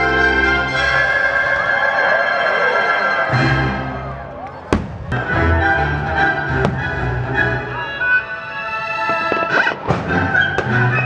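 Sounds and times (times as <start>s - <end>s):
orchestral music: 0.0s - 11.0s
firework bang: 4.7s - 5.3s, 6.6s - 7.1s.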